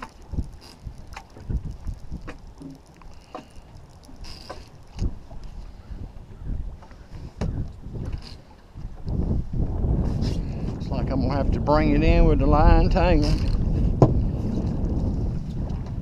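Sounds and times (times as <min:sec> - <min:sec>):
sharp little knocks and clicks: 0:00.0 - 0:05.2
water slapping against hull: 0:00.0 - 0:10.9, 0:12.8 - 0:16.0
wind buffeting microphone: 0:00.0 - 0:16.0.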